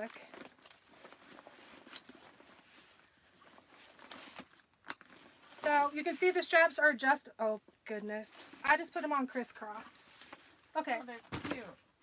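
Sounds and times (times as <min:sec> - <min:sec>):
fabric rustling: 0:00.3 - 0:06.2.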